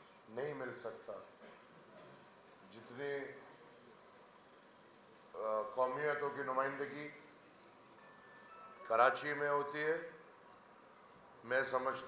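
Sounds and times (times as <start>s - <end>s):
man speaking into microphone: 0.3s - 1.3s, 2.7s - 3.4s, 5.4s - 7.2s, 8.8s - 10.2s, 11.4s - 12.0s
faint electronic tune: 5.4s - 10.2s.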